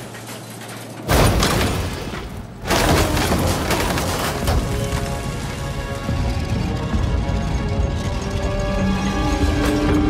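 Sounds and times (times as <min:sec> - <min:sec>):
scrap metal clattering: 0:00.0 - 0:05.6
music: 0:02.8 - 0:10.0.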